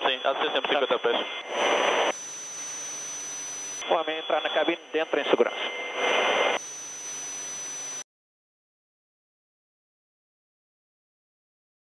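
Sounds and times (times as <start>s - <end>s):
helicopter engine and rotor noise: 0.0s - 8.0s
intercom hiss: 3.8s - 6.6s.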